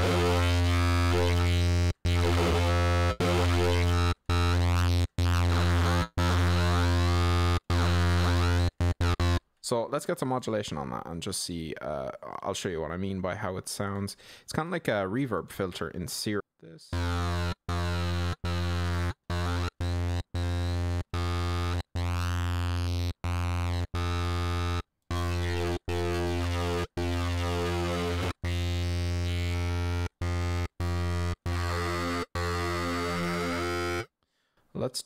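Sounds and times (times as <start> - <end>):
distorted synth note: 0.0 - 9.4, 16.9 - 34.1.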